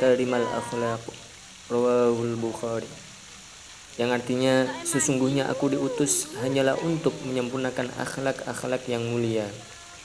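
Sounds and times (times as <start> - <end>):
faint steady hiss: 0.0 - 10.0
man reciting in drawn-out tones: 4.0 - 9.8.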